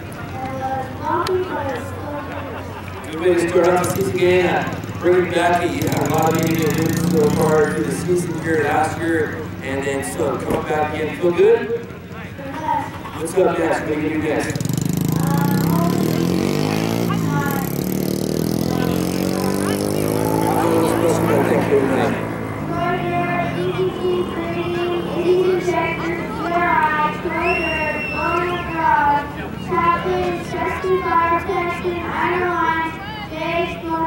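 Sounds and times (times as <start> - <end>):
indistinct voices: 0.0 - 34.0
child's high-pitched voice: 0.3 - 2.5, 12.4 - 13.0, 15.2 - 16.1, 22.7 - 34.0
race car engine at low revs: 1.0 - 34.0.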